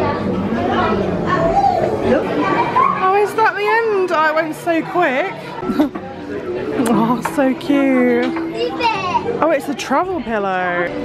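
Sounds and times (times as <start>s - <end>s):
children's voices: 0.0s - 3.9s, 8.2s - 9.4s
chatter of visitors: 0.0s - 11.0s.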